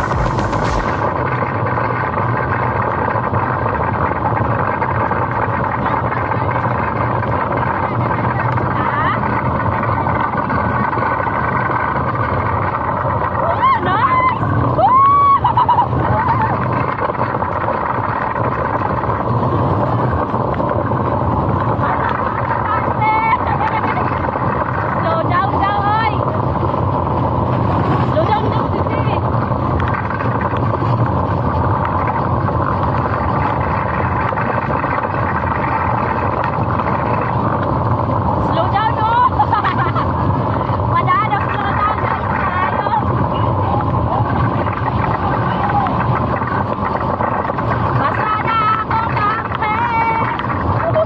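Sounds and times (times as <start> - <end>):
cart wheels rumbling on road: 0.0 - 51.0
wind on microphone: 0.0 - 51.0.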